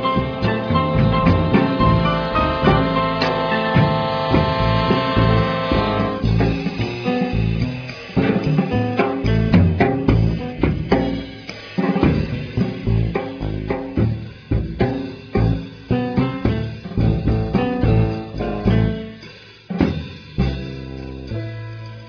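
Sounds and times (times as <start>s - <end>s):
deep bass notes: 0.0s - 11.4s, 12.1s - 19.2s, 19.8s - 22.0s
drum kit hits: 0.0s - 21.0s
guitar: 0.0s - 22.0s.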